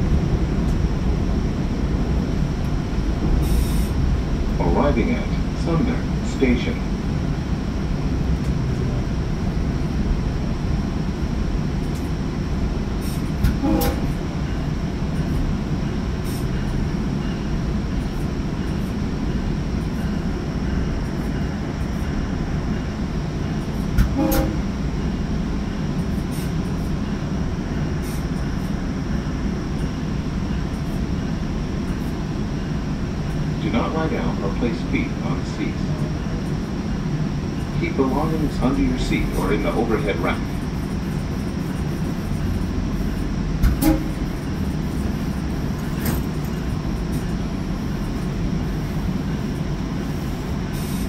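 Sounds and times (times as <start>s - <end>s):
train wheels rumbling on track: 0.0s - 51.0s.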